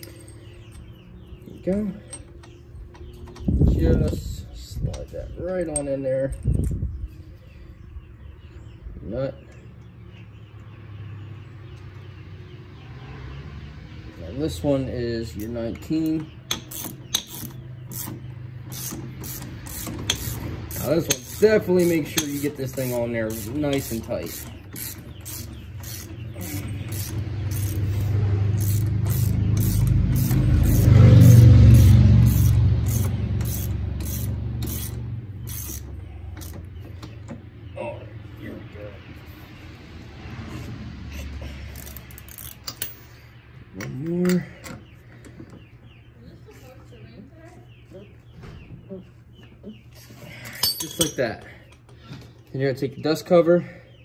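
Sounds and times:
steel tools clanking on metal: 0.0 - 6.8, 15.2 - 37.4, 41.7 - 45.4, 50.2 - 52.2
vehicle engine hum: 9.5 - 50.5.

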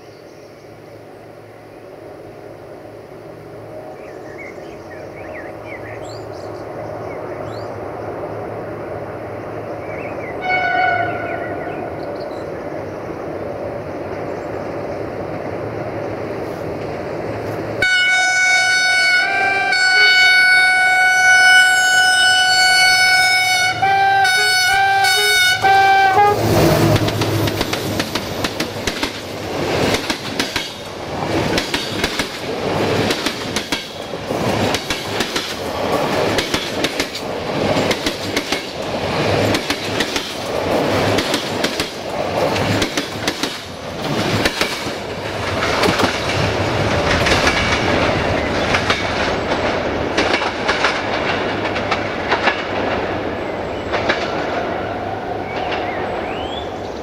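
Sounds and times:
train rolling roar: 0.0 - 57.0
train horn blast: 10.4 - 11.6, 17.8 - 27.0
wheels clacking over rail joints: 26.4 - 54.8, 55.4 - 56.6.

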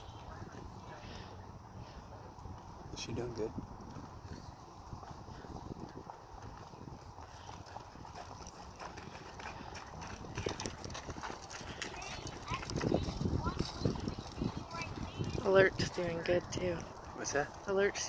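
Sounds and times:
horse trotting on sand: 2.4 - 18.0.

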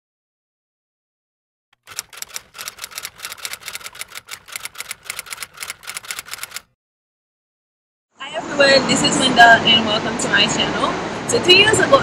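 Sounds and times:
typewriter keystroke clicks: 1.8 - 6.7.

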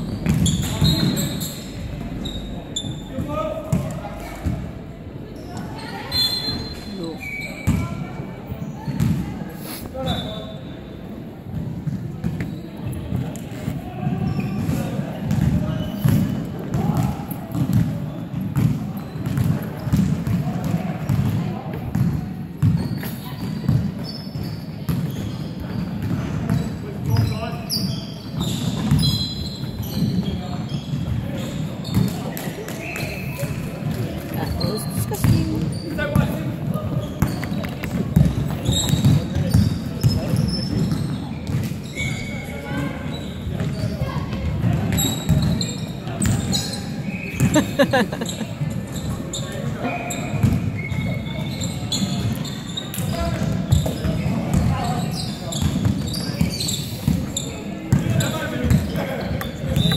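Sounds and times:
basketball bouncing on court: 7.6 - 7.9, 8.9 - 9.2, 14.1 - 27.3, 33.9 - 36.4, 37.0 - 41.7, 43.5 - 45.6, 50.3 - 52.3, 53.0 - 54.8, 55.5 - 56.5.

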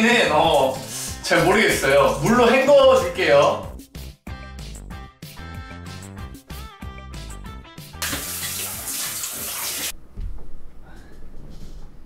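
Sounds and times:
shower head spraying water: 8.0 - 10.0.

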